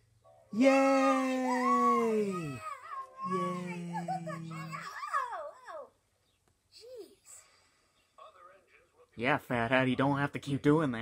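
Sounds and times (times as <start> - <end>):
high-pitched wavering voices: 0.6 - 5.0.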